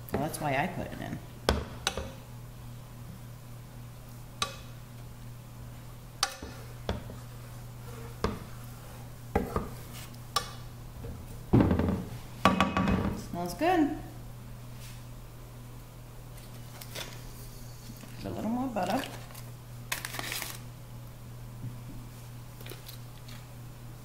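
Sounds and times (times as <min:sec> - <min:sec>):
steady low hum: 0:00.0 - 0:24.0
wooden spatula scraping a pan: 0:06.2 - 0:10.2.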